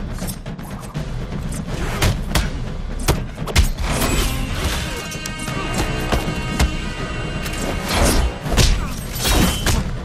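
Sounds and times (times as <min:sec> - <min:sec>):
tense orchestral score: 0:00.0 - 0:10.0.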